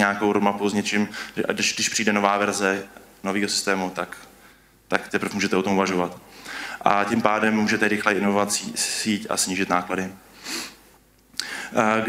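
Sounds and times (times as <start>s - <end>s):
man speaking: 0.0s - 4.3s, 4.9s - 6.2s, 6.8s - 10.2s, 11.7s - 12.0s
man breathing in through nose: 6.3s - 6.8s, 10.3s - 10.8s, 11.4s - 11.8s.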